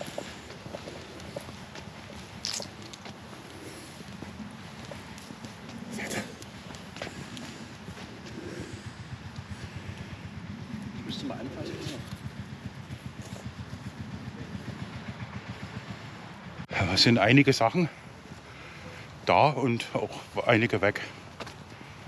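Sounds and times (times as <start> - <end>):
low fluttering rumble: 0.0 - 22.0.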